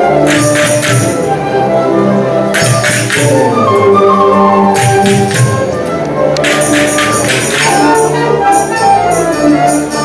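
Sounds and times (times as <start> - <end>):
wind band playing sustained chords: 0.0 - 10.0.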